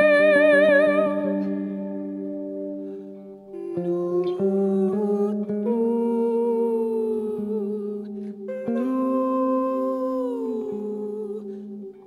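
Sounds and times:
woman singing long notes: 0.0 - 2.2, 3.4 - 12.0.

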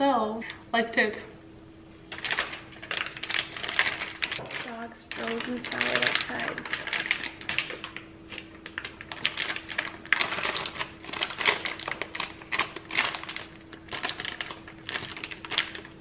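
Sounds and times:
plastic piping bag crinkling: 2.1 - 16.0.

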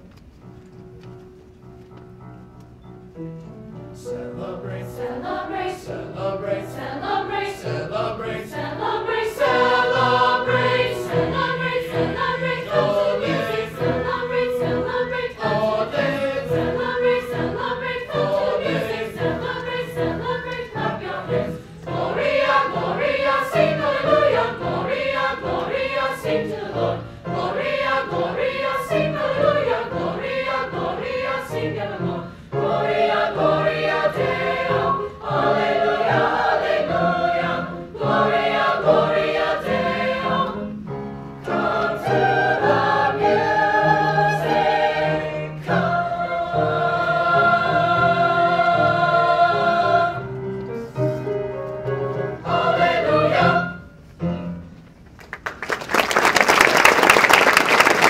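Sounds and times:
upright piano: 0.0 - 55.4
mixed choir singing: 4.0 - 51.0, 52.2 - 53.9.

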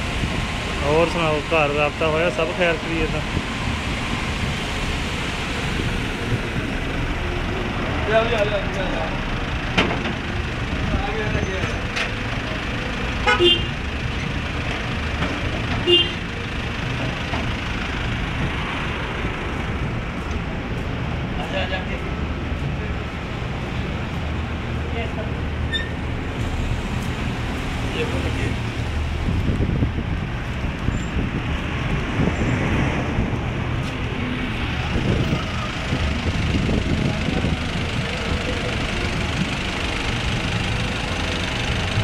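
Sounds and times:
motor vehicles rumbling: 0.0 - 42.0
car horn toot: 13.2 - 13.8, 15.8 - 16.2.

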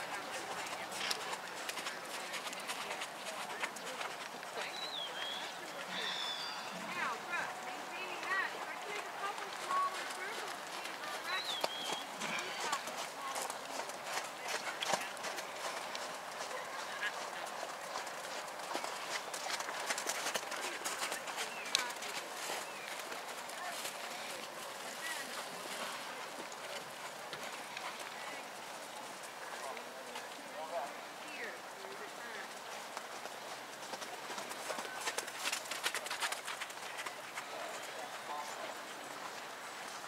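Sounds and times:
indistinct voices: 0.0 - 17.6
horse hoofbeats in soft sand: 0.0 - 30.4, 31.9 - 38.7.

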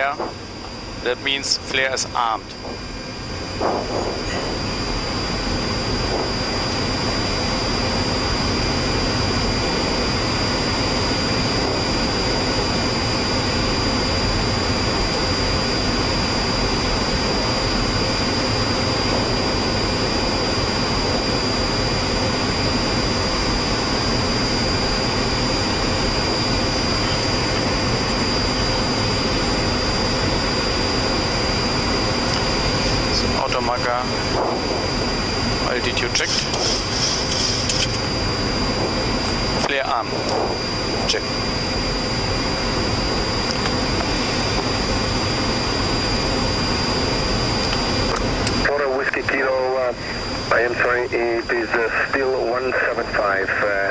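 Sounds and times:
jet engines running: 0.0 - 53.9
rush of airflow: 2.6 - 8.4.

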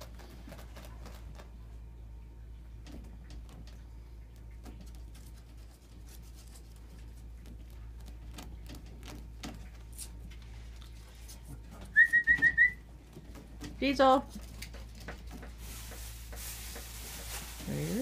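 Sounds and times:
faint ticks and scratches: 0.0 - 12.2, 12.8 - 17.6
person whistling high notes: 12.0 - 12.8.

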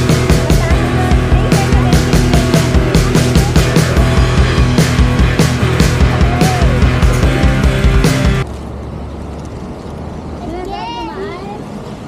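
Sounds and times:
low rumble: 0.0 - 8.5.

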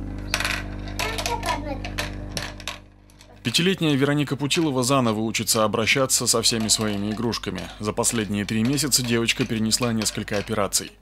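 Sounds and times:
low electrical hum: 0.0 - 11.0
plastic toy pieces clattering: 0.3 - 3.4, 5.9 - 10.8.

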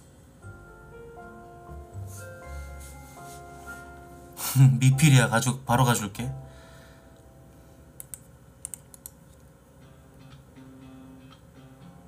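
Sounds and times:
computer keyboard clicks: 8.0 - 9.4.

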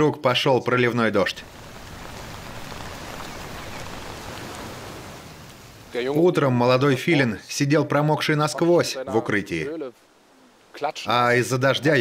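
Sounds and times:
heavy rain falling: 1.2 - 6.3.

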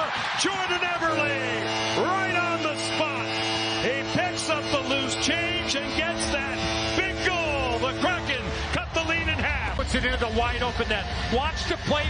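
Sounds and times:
crowd cheering and whistling: 0.0 - 12.0
goal horn blast: 0.4 - 10.0.

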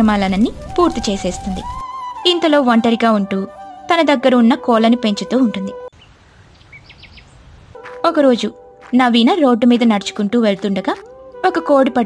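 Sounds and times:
outdoor ambience hiss: 0.0 - 2.6, 4.6 - 10.8
faint bird chirps: 5.9 - 7.4
person speaking: 7.8 - 12.0.

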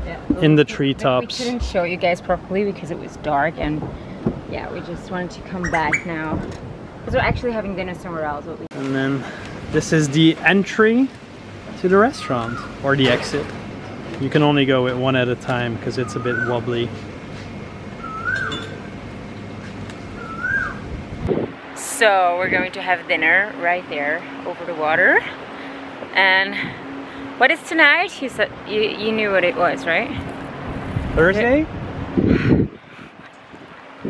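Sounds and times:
steady background hush: 0.0 - 31.0
wind buffeting microphone: 1.2 - 8.7, 20.0 - 22.9, 28.2 - 34.0
bird whistled call: 16.0 - 16.6, 18.0 - 18.8, 20.2 - 20.8.

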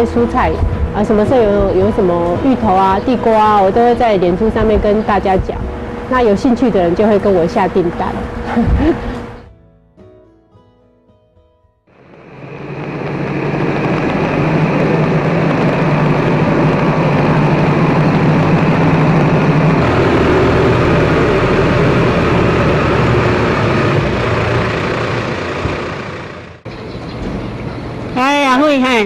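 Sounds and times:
tractor engine running: 0.0 - 9.5, 12.0 - 28.1.

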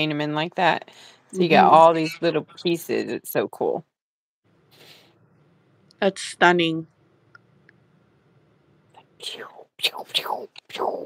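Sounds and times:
person whispering: 9.0 - 11.0.

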